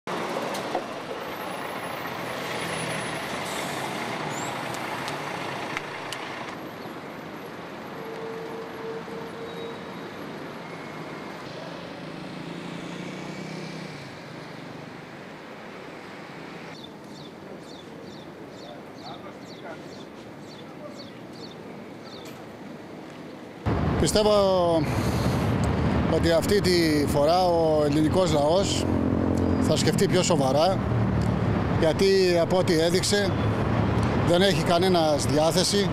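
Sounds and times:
road traffic noise: 0:00.0 - 0:35.9
bus engine pulling away: 0:00.1 - 0:07.6, 0:09.6 - 0:16.8, 0:23.7 - 0:35.9.

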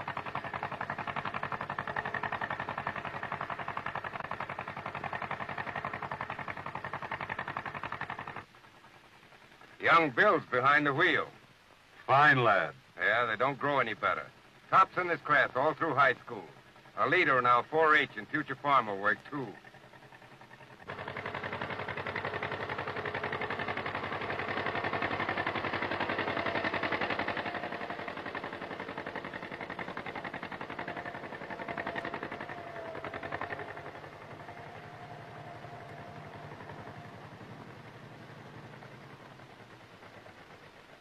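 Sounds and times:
tractor engine popping: 0:00.0 - 0:11.5, 0:13.3 - 0:41.0.

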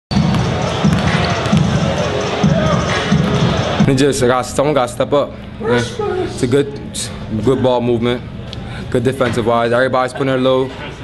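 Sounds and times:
basketballs bouncing on hardwood: 0:00.1 - 0:01.8
crowd voices: 0:00.1 - 0:11.0.

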